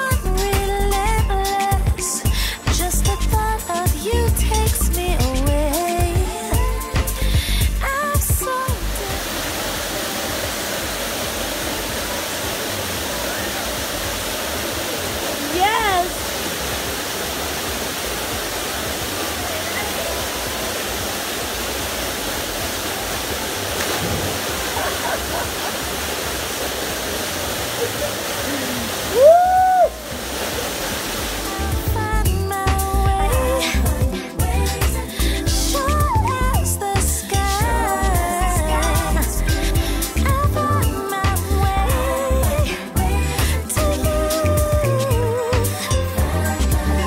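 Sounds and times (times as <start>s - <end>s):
waterfall rushing: 5.8s - 47.0s
person shouting: 28.5s - 30.0s.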